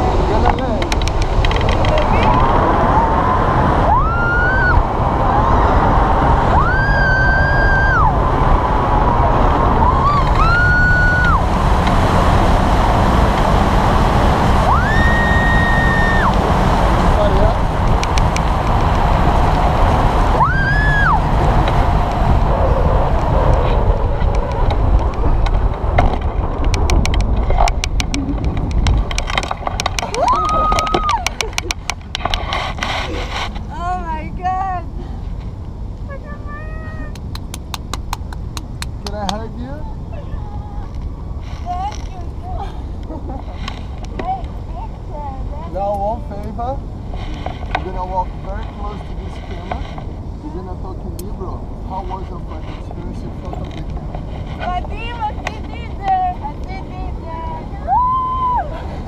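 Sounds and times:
strong wind on microphone: 0.0s - 59.0s
long high rising tones: 2.2s - 23.3s.

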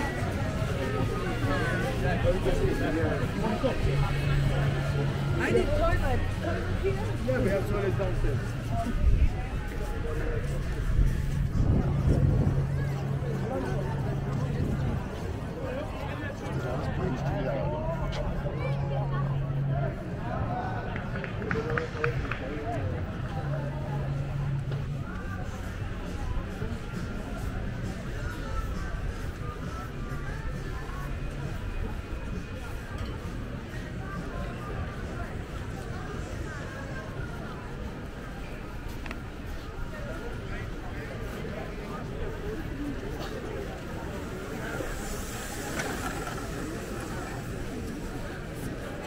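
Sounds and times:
background chatter of voices: 0.0s - 49.0s.

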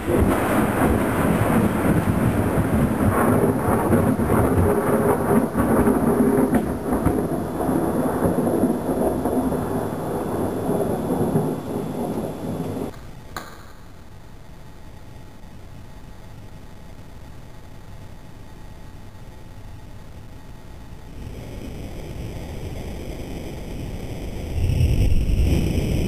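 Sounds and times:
heavy rain: 0.0s - 12.9s, 21.1s - 26.0s
low rolling thunder: 0.0s - 12.9s, 21.1s - 26.0s
faint hiss: 0.0s - 26.0s.

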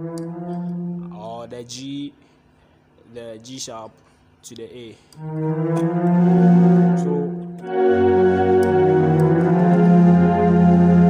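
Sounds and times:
low bass note: 0.0s - 1.4s, 5.2s - 11.0s
keyboard strings chords: 0.0s - 1.7s, 5.2s - 11.0s.

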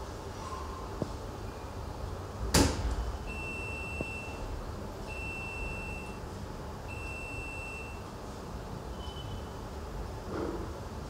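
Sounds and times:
electronic beeps: 5.1s - 6.2s.

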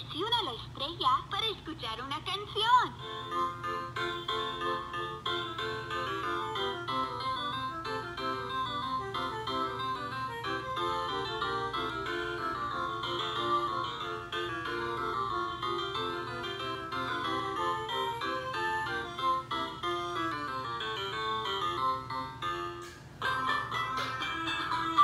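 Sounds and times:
toy drum electronic melody: 3.0s - 25.0s.

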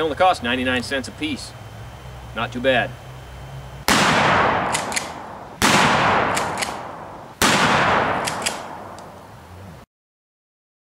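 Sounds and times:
gunshots with echoing tail: 3.9s - 9.0s.

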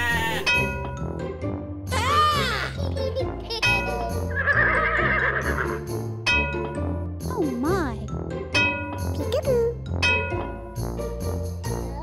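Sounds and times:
children's background music: 0.0s - 12.0s
horse whinny: 4.3s - 5.8s.

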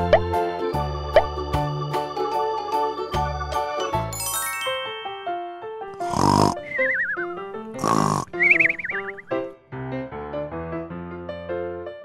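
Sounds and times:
background music: 0.0s - 10.9s
cartoon snoring: 5.9s - 6.9s, 7.8s - 8.8s.

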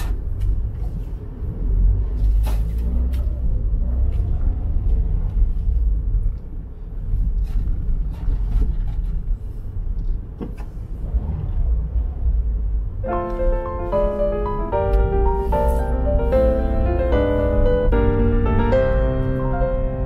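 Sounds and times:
engine and tyre rumble: 0.0s - 20.0s.

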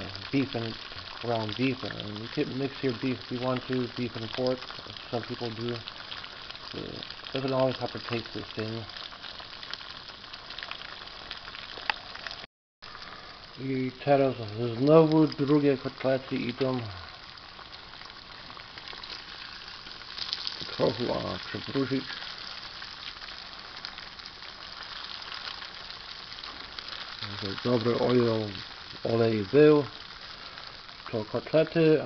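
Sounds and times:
oil popping: 0.0s - 32.0s
patties sizzling in hot oil: 0.0s - 32.0s.

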